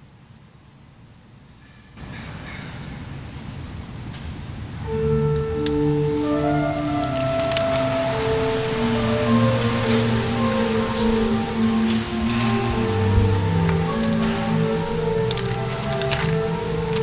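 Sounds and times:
chairs clicking and shuffling: 0:04.9 - 0:17.0
church organ chords: 0:04.9 - 0:17.0.

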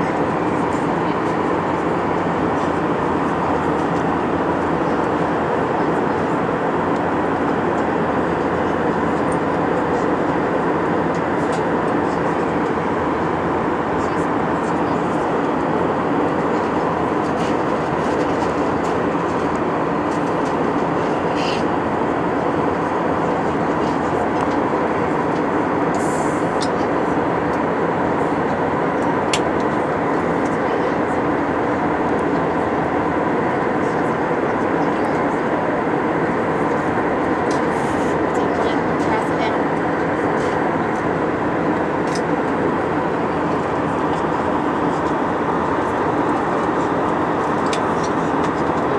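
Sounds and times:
jet engine and airflow hum: 0:00.0 - 0:48.9.

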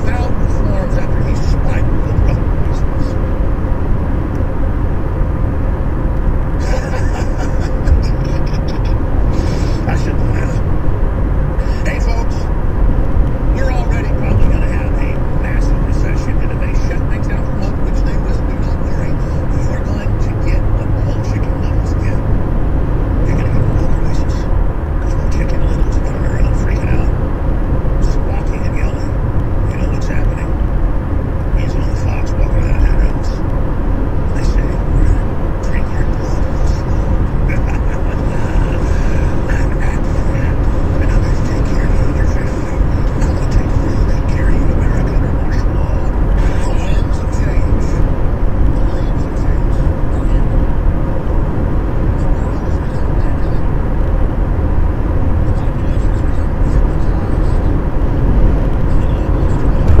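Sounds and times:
indistinct voices: 0:00.0 - 1:00.0
road and tyre noise in car: 0:00.0 - 1:00.0.

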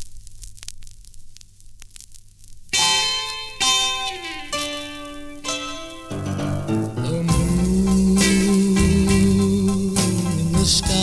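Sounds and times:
vinyl clicks and pops: 0:00.0 - 0:07.4
vinyl hiss and hum: 0:00.0 - 0:11.0.

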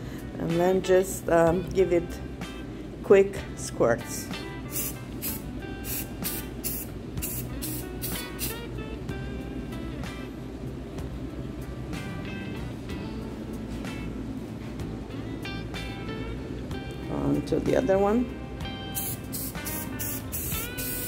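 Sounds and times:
background music: 0:00.0 - 0:21.0
spray paint can hissing: 0:04.7 - 0:08.6, 0:18.9 - 0:21.0.

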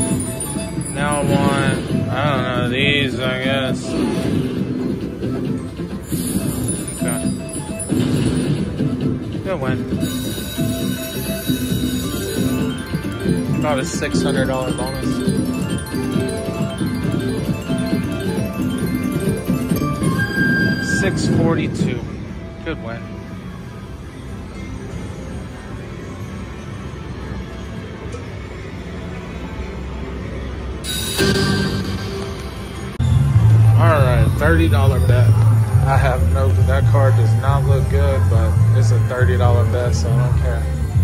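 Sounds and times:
slot machine win tones: 0:00.0 - 0:22.2, 0:30.8 - 0:41.0.

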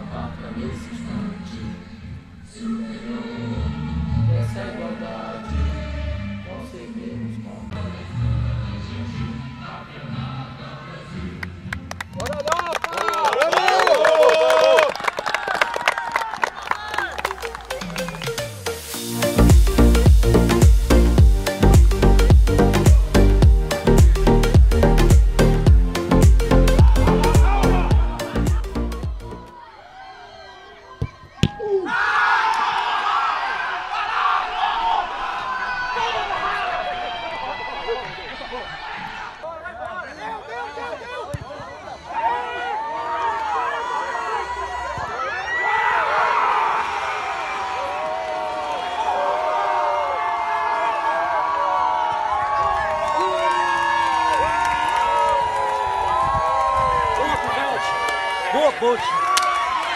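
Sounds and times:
players shouting and cheering: 0:12.1 - 0:59.9.

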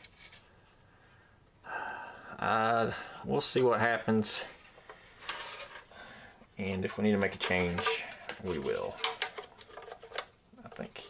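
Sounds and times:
handling noises: 0:04.5 - 0:11.0
plastic clicking and rubbing: 0:06.8 - 0:11.0.

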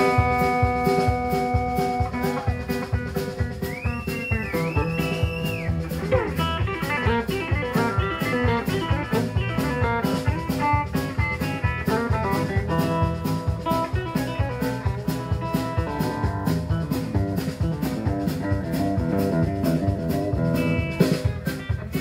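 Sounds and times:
bass guitar: 0:00.0 - 0:22.0
electric guitar playing lead: 0:00.0 - 0:22.0
steady drum beat: 0:00.0 - 0:22.0.

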